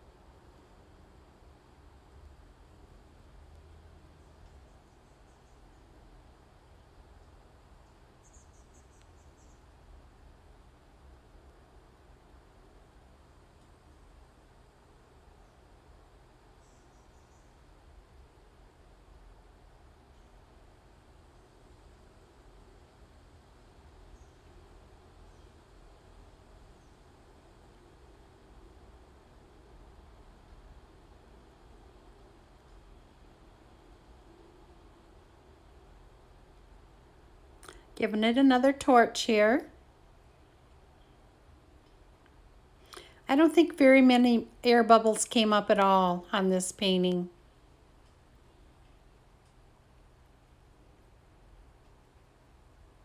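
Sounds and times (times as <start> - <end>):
low room hum: 0.0 - 53.0
faint high-pitched chirps: 4.2 - 6.0, 7.8 - 9.9, 16.5 - 17.7.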